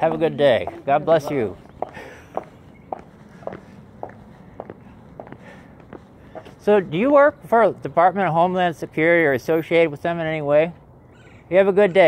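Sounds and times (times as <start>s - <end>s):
footsteps on concrete: 0.0s - 7.6s.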